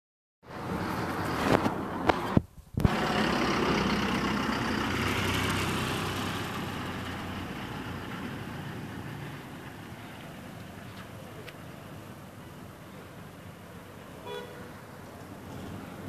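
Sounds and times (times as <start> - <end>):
vehicle engine humming: 0.5 - 16.0.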